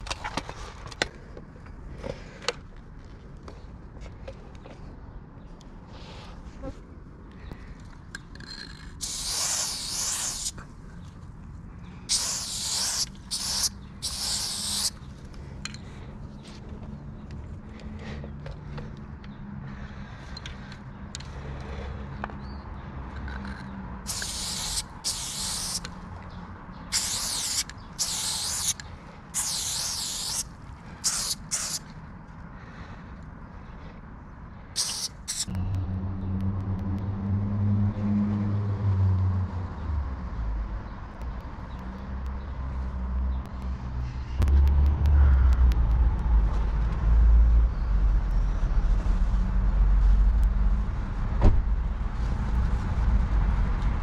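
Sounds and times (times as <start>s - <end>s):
spray paint can hissing: 8.9s - 10.6s, 12.1s - 15.0s, 24.1s - 25.9s, 26.9s - 28.8s, 29.4s - 31.9s, 34.8s - 35.6s.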